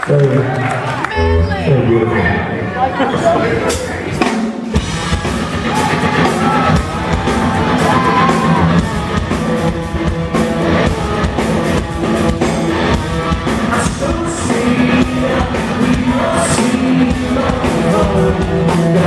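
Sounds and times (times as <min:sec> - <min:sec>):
live rock band: 0:02.9 - 0:19.0.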